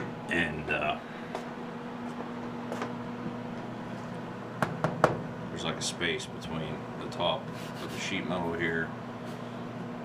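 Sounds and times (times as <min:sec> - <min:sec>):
furnace mechanical hum: 0:00.0 - 0:10.0.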